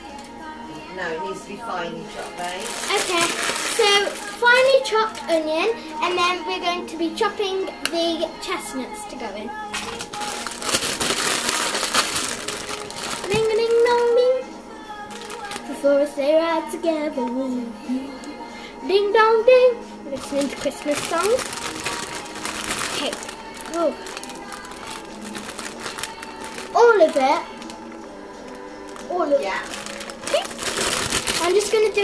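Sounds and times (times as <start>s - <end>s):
plastic packet crinkling: 2.1s - 5.4s, 9.7s - 14.1s, 15.1s - 15.8s, 20.2s - 32.0s.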